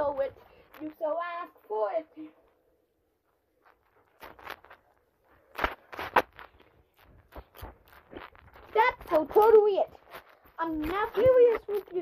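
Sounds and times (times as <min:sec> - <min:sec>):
phone handled against clothing: 0:03.6 - 0:12.0.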